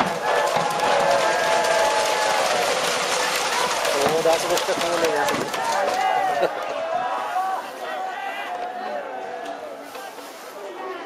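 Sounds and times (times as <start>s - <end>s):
sharp claps: 0.0s - 6.2s
crowd calling and shouting: 0.0s - 11.0s.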